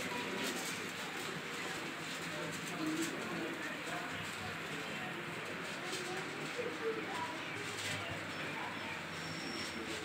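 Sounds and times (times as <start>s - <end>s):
faint indistinct voices: 0.0s - 10.0s
steady background noise: 0.0s - 10.0s.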